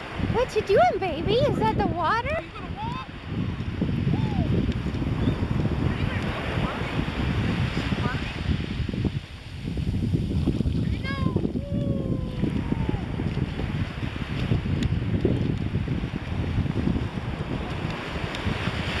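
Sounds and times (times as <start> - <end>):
surf washing up shore: 0.0 - 19.0
wind buffeting microphone: 0.0 - 19.0.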